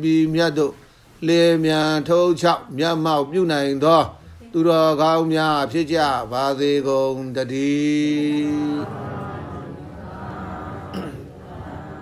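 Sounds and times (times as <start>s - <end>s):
man chanting: 0.0s - 11.8s.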